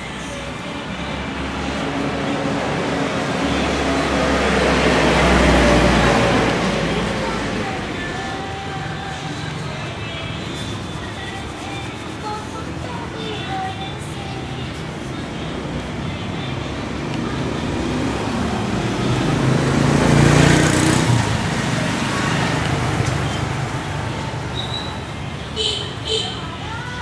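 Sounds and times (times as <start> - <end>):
vehicle passing close by: 0.0 - 11.0, 14.8 - 25.3
street traffic: 0.0 - 27.0.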